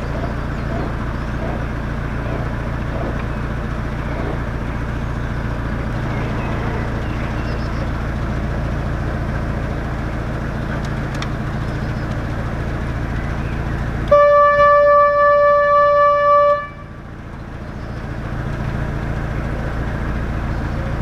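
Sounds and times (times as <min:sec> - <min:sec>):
diesel engine running slowly: 0:00.0 - 0:21.0
boat horn blast: 0:14.0 - 0:17.1.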